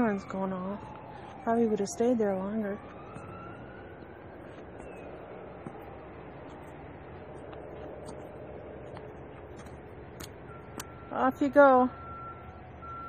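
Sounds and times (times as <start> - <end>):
distant traffic rumble: 0.0 - 13.0
faint siren: 0.0 - 13.0.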